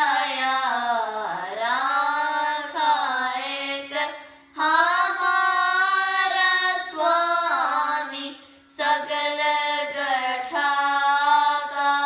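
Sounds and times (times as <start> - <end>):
children singing devotional song: 0.0 - 12.0.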